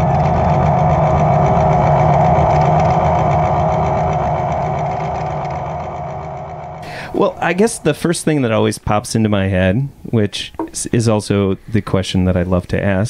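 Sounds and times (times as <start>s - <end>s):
gritty sustained rock chord: 0.0s - 9.0s.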